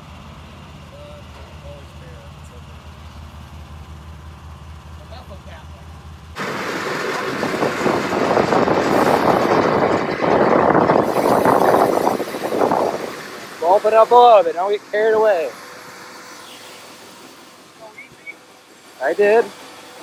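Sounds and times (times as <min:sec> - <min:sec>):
engine idling: 0:00.0 - 0:20.0
seeds rushing through auger: 0:06.4 - 0:17.7.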